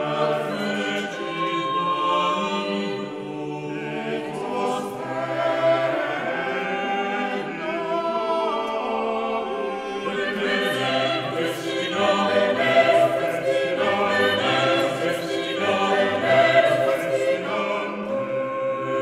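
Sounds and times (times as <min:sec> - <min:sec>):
vocal ensemble singing a cappella: 0:00.0 - 0:19.0.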